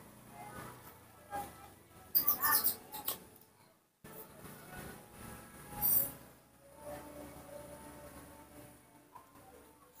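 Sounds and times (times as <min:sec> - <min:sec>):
baby monkey squeaking: 0:02.2 - 0:02.8.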